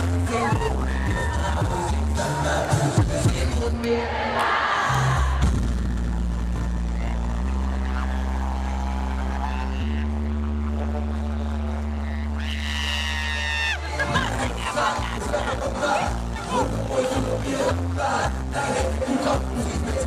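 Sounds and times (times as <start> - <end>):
crowd noise: 0.0 - 20.0
live concert drone music: 0.0 - 20.0.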